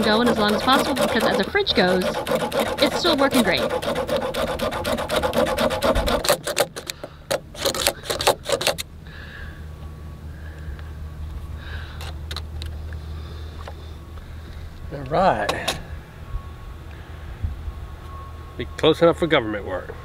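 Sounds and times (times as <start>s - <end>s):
hacksaw cutting metal: 0.0s - 8.8s
low steady hum: 0.0s - 20.0s.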